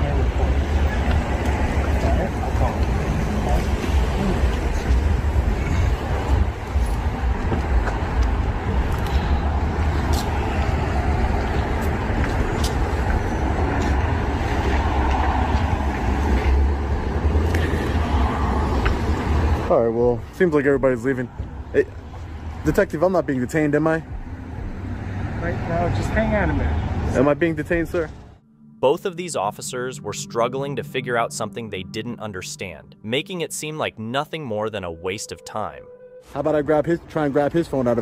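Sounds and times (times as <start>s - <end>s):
street traffic rumble: 0.0s - 28.4s, 29.6s - 38.0s.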